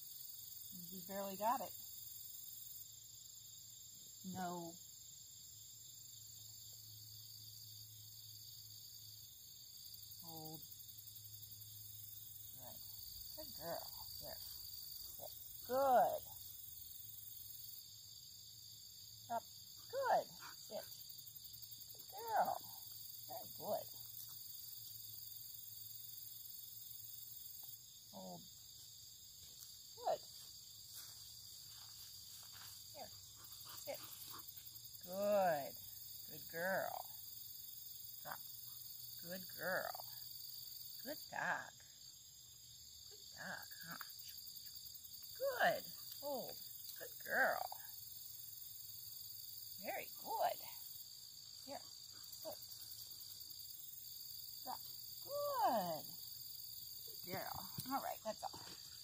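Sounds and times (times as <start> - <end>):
insects trilling: 0.0 - 59.0.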